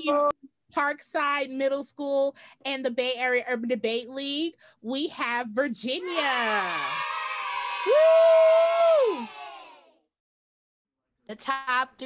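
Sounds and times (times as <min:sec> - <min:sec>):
person shouting woo: 0:06.0 - 0:09.8
people cheering: 0:06.0 - 0:09.9.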